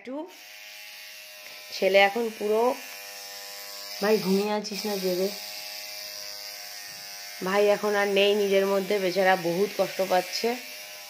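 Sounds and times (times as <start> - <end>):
tattoo machine buzzing: 0.3 - 11.0
person speaking: 4.0 - 5.4.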